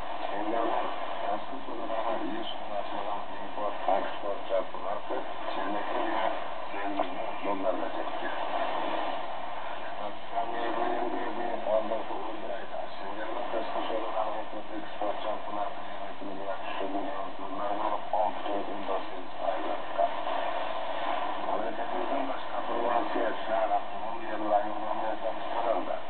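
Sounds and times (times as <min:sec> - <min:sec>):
radio speech: 0:00.0 - 0:20.5, 0:21.3 - 0:26.0
static hiss: 0:00.0 - 0:26.0.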